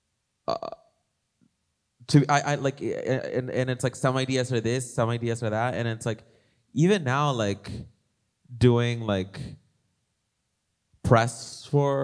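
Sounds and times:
man saying uh into microphone: 2.1 - 6.2, 6.8 - 7.9, 8.5 - 9.6.

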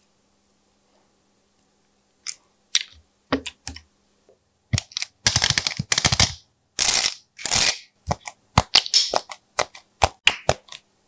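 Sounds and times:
slime crackling and popping: 6.9 - 10.8.

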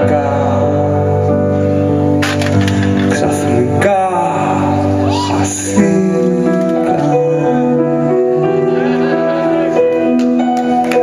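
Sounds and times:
live rock band playing: 1.6 - 3.4.

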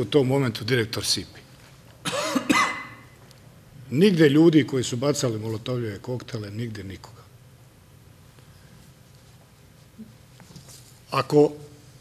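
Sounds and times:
person coughing: 2.0 - 3.1.

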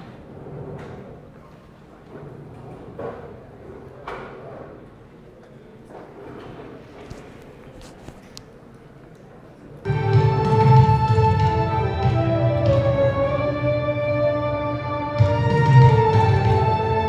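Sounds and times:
synth pop music with heavy drums: 9.9 - 17.0.

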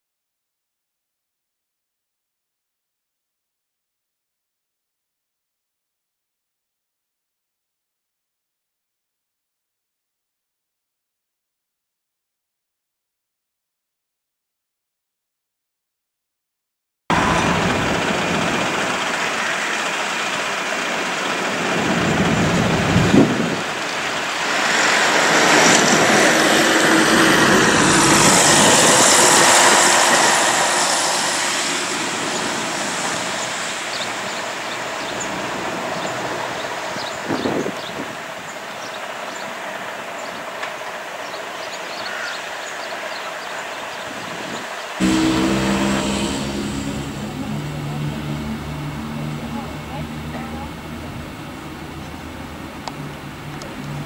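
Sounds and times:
bus engine and road noise: 17.1 - 54.0.

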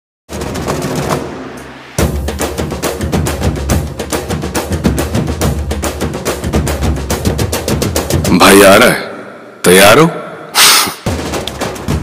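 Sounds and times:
rapid drumming on drum kit: 0.3 - 1.4, 2.0 - 8.8, 11.0 - 12.0.

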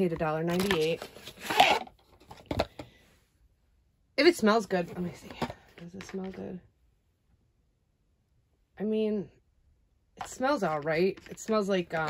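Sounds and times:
plastic bottle rustling scrape: 0.5 - 2.8.

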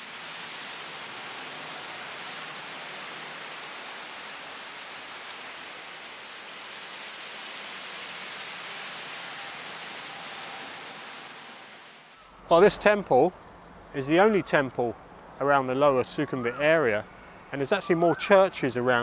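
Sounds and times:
churning water hiss: 0.0 - 12.2.

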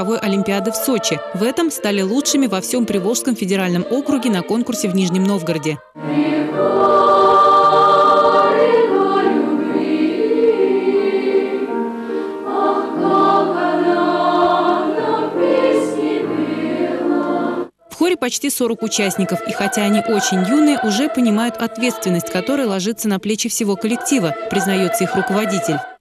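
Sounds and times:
children's choir singing: 0.0 - 17.7, 18.6 - 26.0.

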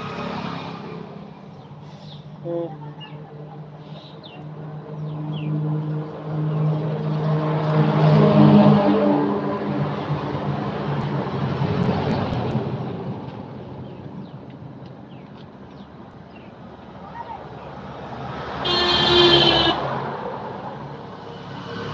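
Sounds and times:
motor vehicle passing by: 0.0 - 2.2, 3.2 - 14.4, 16.9 - 21.9.

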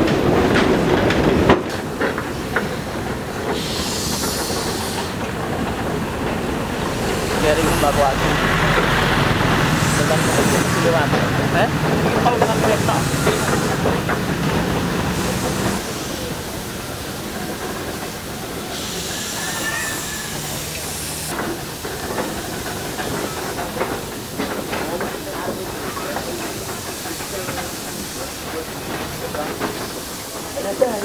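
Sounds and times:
loud steam hiss: 0.0 - 31.0
steam locomotive running: 0.0 - 31.0
train knocking and rattling on rails: 0.0 - 31.0.

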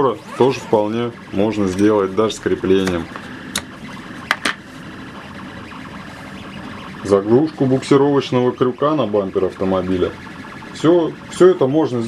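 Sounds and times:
steady faint hum: 0.0 - 12.0.

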